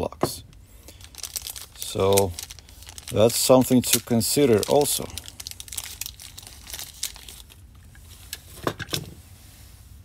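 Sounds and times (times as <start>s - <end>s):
plastic bag crinkling and tearing: 0.8s - 8.6s.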